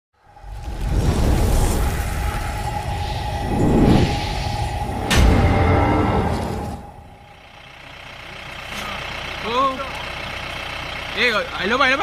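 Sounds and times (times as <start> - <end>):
whooshing sound effects: 0.2 - 7.4
low rumble: 0.2 - 9.2
boom: 0.3 - 7.4
held tone: 2.2 - 8.1.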